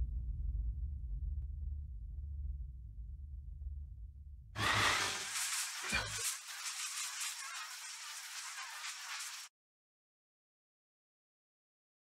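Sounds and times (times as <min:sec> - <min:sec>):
breathy hiss: 0:04.6 - 0:09.5.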